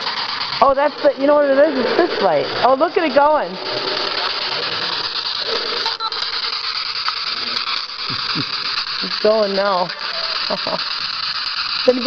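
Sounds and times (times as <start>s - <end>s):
static hiss: 0.0s - 12.0s.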